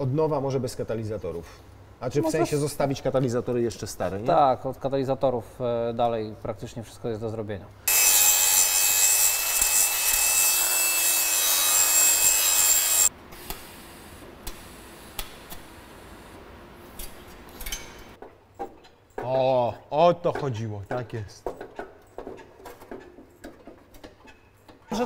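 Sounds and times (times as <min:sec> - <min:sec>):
power tool grinding with whine: 0:07.9 - 0:13.1.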